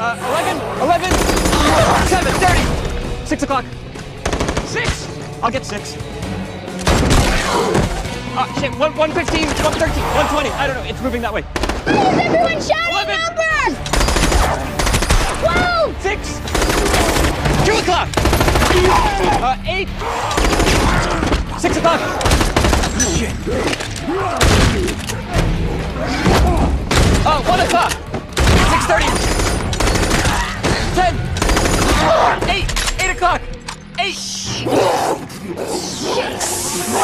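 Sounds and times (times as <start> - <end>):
rapid gunfire: 1.0 - 2.6, 4.2 - 5.0, 11.5 - 12.2, 13.9 - 15.4, 16.5 - 19.2, 20.3 - 21.3, 22.2 - 23.0, 28.4 - 32.3
loud gunshots: 1.0 - 2.7, 4.2 - 5.0, 11.5 - 12.4, 13.9 - 15.4, 16.5 - 19.2, 20.1 - 21.4, 22.1 - 23.1, 28.4 - 32.4
man shouting: 18.6 - 20.3.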